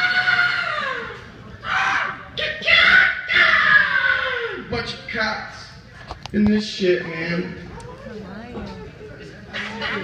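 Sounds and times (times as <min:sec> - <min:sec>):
man yelling through loudspeaker: 0:01.9 - 0:05.2.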